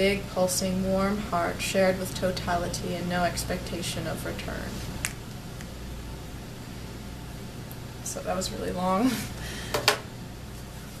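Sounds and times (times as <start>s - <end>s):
woman speaking: 0.0s - 4.8s, 8.0s - 9.4s.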